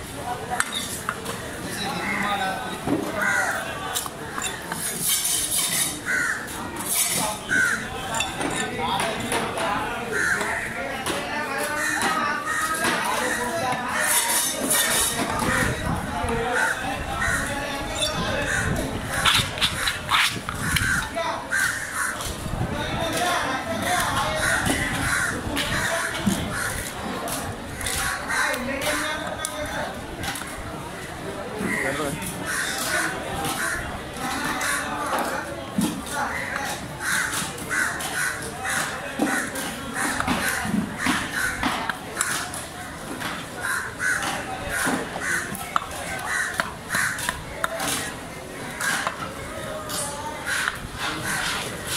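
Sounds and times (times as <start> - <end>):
crows cawing: 3.2 - 3.7, 6.0 - 6.6, 7.4 - 7.9, 10.0 - 10.8, 16.5 - 17.7, 20.6 - 22.3, 24.3 - 26.9, 31.7 - 33.9, 34.5 - 35.0, 36.2 - 43.0, 43.6 - 47.5, 50.4 - 51.6.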